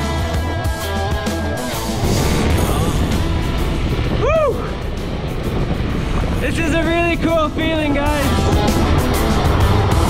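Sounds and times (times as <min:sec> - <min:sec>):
background music: 0:00.0 - 0:10.0
vocal whoop: 0:04.2 - 0:04.8.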